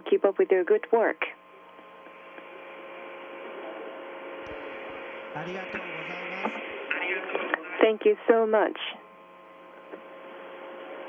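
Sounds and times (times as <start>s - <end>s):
faint hum: 0.0s - 11.0s
steady radio hiss: 0.0s - 11.0s
person speaking: 5.4s - 6.7s.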